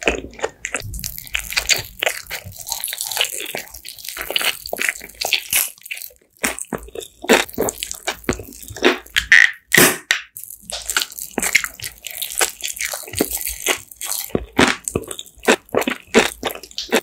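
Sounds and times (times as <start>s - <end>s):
food crunching while chewed: 0.0s - 9.4s, 10.4s - 17.0s.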